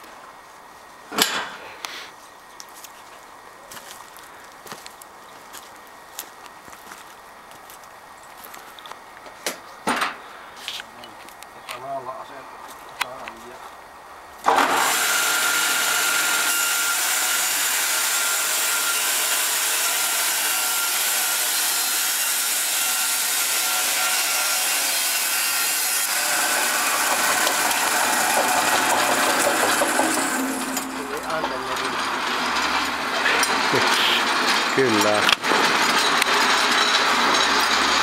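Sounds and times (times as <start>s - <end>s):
band sawmill sawing timber: 14.4s - 38.0s.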